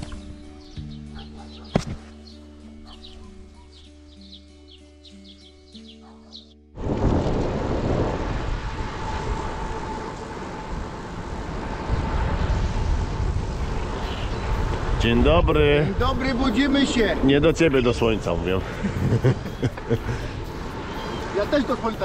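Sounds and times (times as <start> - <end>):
soft background music: 0.0 - 6.8
road and tyre noise: 5.9 - 22.0
wind rush on microphone: 6.8 - 22.0.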